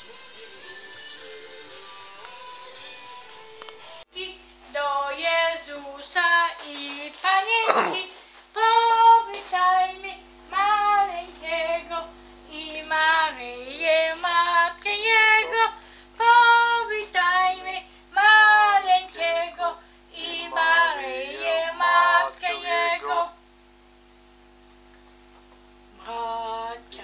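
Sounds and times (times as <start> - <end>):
child singing: 4.2 - 23.4.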